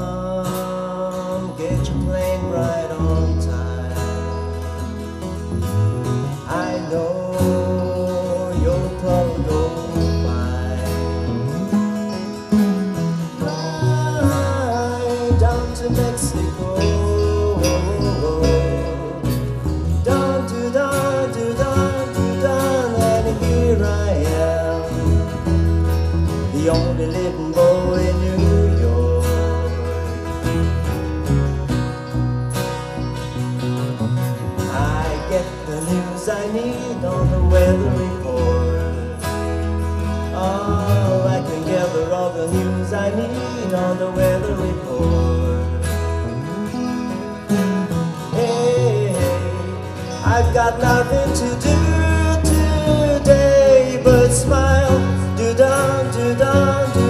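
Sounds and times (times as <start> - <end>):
man singing: 0.0 - 31.3, 34.4 - 57.0
bass guitar: 0.0 - 57.0
electric guitars: 0.0 - 57.0
strummed acoustic guitar: 0.0 - 57.0.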